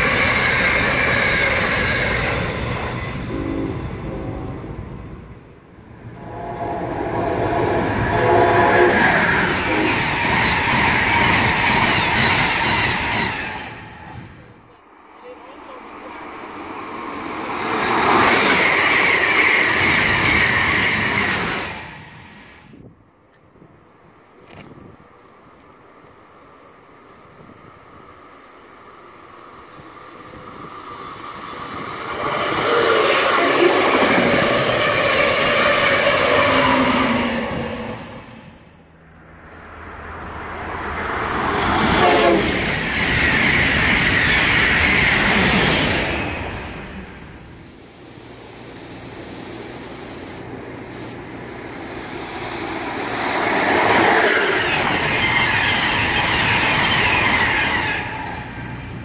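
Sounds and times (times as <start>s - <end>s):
electric trains passing: 0.0s - 59.0s
train horn: 3.2s - 5.0s, 6.0s - 10.3s, 41.7s - 42.7s.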